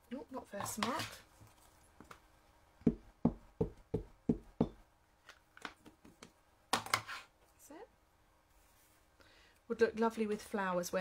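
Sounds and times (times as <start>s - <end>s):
stamp knocking on ink pad: 2.8s - 4.8s.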